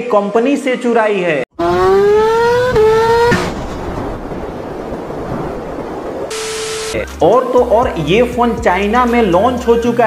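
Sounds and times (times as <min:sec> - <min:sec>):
motorcycle engine revving: 0:01.5 - 0:04.4
wind and road noise: 0:01.5 - 0:07.0.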